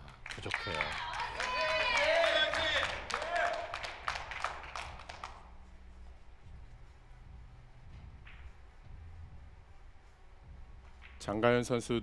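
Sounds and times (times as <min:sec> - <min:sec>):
audience handclaps: 0:00.0 - 0:05.5
low hall hum: 0:00.0 - 0:12.0.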